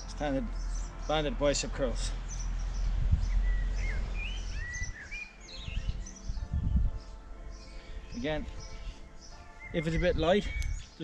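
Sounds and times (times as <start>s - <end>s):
low outdoor rumble: 0.0s - 8.5s
songbirds chirping: 0.0s - 11.0s.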